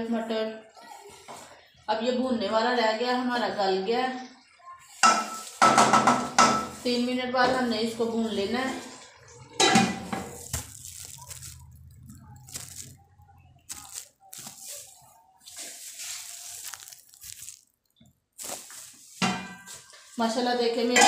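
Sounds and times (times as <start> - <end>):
curry bubbling and hissing: 4.4 - 20.4.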